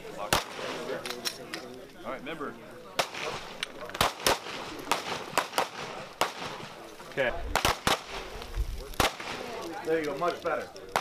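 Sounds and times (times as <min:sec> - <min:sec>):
pistol shots: 0:03.0 - 0:06.8, 0:07.5 - 0:08.3, 0:09.0 - 0:09.6.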